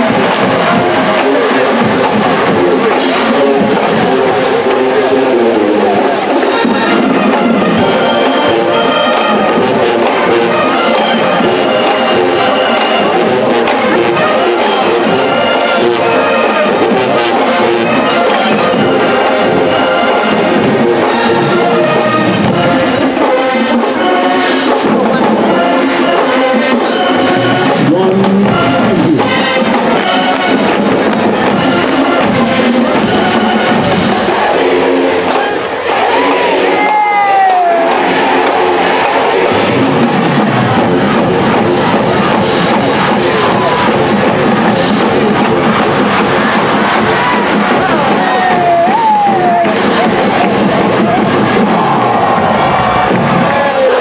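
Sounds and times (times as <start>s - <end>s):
crowd cheering: 0.0s - 54.0s
marching band playing: 0.0s - 54.0s
crowd shouts and whoops: 34.0s - 41.2s, 41.9s - 54.0s.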